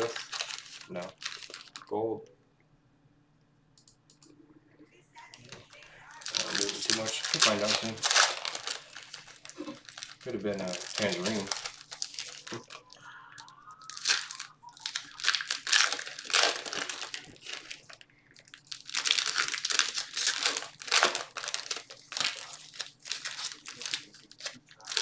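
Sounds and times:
cards shuffled by hand: 0:00.0 - 0:01.9, 0:06.3 - 0:12.8
wrapper crinkling: 0:00.0 - 0:02.0, 0:05.3 - 0:25.0.

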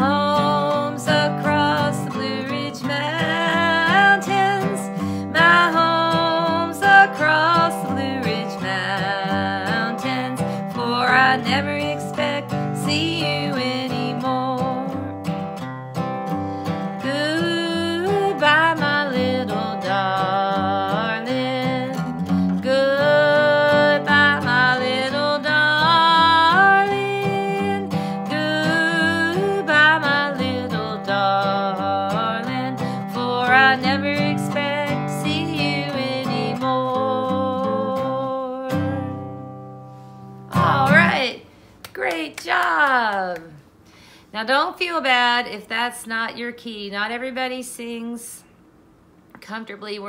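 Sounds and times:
woman singing: 0:00.0 - 0:15.3, 0:16.9 - 0:39.5, 0:40.5 - 0:41.4
strummed acoustic guitar: 0:00.0 - 0:41.4.

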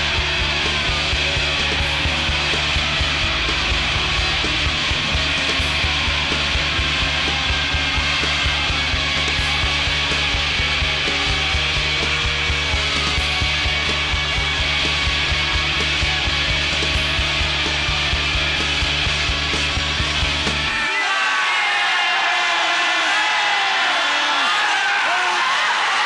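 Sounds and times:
distorted rock instrumental: 0:00.0 - 0:21.9.

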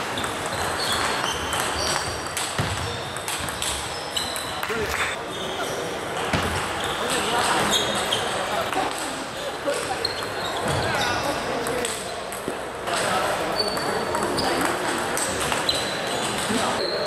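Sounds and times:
table tennis balls clicking: 0:00.0 - 0:05.1, 0:11.6 - 0:16.8
murmur of voices: 0:02.6 - 0:17.0.

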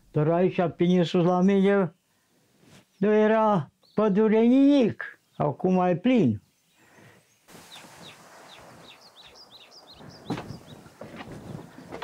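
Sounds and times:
faint outdoor hiss: 0:00.0 - 0:12.0
songbird chirping: 0:00.0 - 0:12.0.

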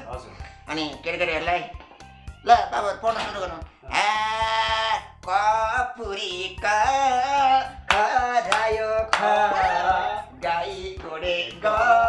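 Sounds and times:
background music with steady beat: 0:00.0 - 0:12.0
man singing: 0:03.9 - 0:12.0.

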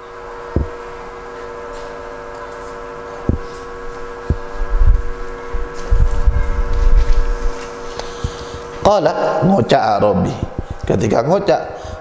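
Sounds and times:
steady tonal hum: 0:00.0 - 0:12.0.

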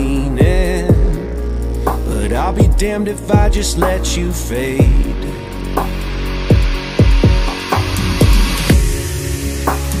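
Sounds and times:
pop song sustained chords: 0:00.0 - 0:10.0
steady drum beat: 0:00.0 - 0:10.0.

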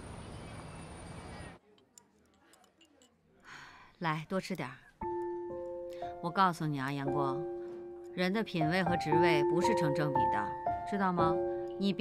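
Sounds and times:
chopsticks clicking on tableware: 0:01.7 - 0:03.2.

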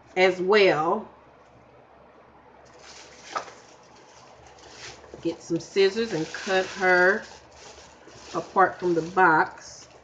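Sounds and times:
packaging rustling and crinkling: 0:02.7 - 0:10.0.

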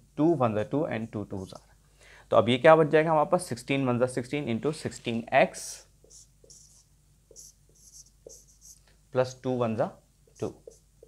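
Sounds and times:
marker pen on whiteboard: 0:04.6 - 0:09.0, 0:10.2 - 0:11.0.

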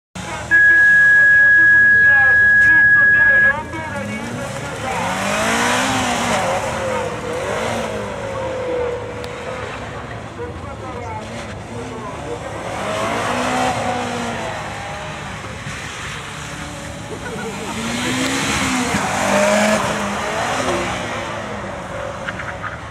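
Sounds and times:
loud electronic beep: 0:00.5 - 0:03.9
car engine revving hard: 0:02.4 - 0:10.2, 0:11.1 - 0:22.3.

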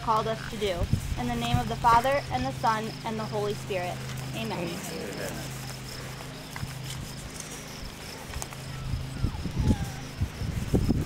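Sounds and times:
insects chirping: 0:00.0 - 0:11.0
steady low hum: 0:00.0 - 0:11.0.

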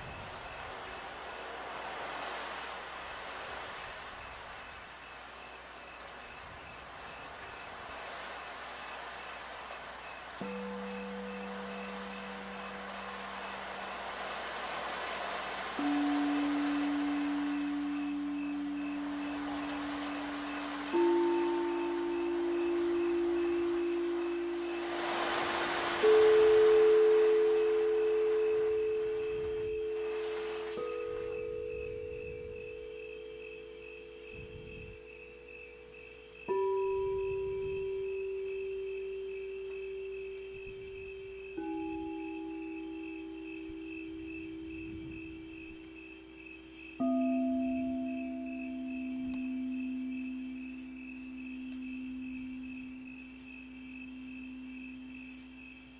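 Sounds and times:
crystal singing bowls ringing: 0:06.6 - 0:55.9.

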